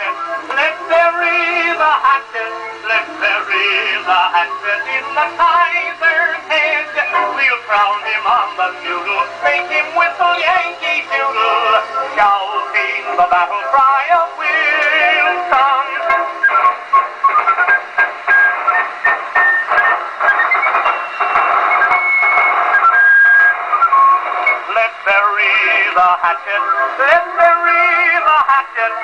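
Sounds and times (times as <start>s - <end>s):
person singing: 0.0s - 16.7s, 24.6s - 29.0s
old band recording on phonograph: 0.0s - 29.0s.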